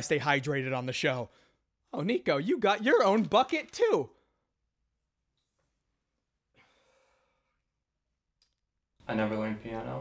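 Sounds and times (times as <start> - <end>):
faint exhale: 6.5 - 7.6.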